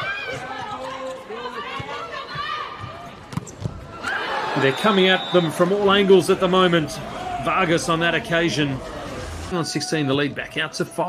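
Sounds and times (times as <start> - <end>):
crowd voices and shouting: 0.0 - 11.0.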